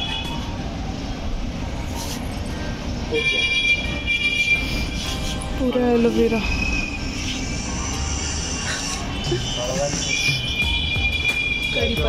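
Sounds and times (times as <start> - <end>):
street traffic rumbling: 0.0 - 12.0
vehicle horn: 3.1 - 5.0, 9.0 - 12.0.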